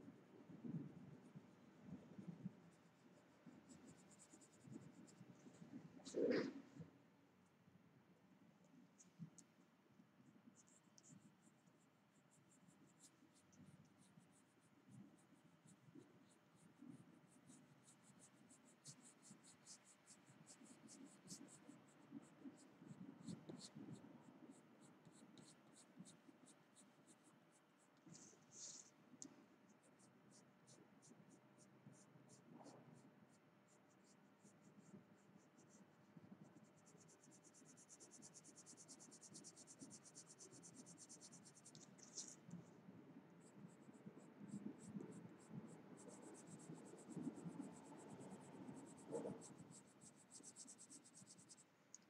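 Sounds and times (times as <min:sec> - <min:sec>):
pencil scratching on paper: 0:02.2 - 0:06.7, 0:10.5 - 0:42.6, 0:43.4 - 0:52.0.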